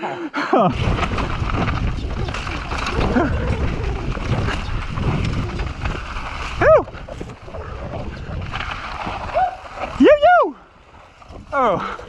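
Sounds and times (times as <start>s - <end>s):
wind rushing over microphone: 0.7s - 10.5s
bike rattling over ground: 0.7s - 12.0s.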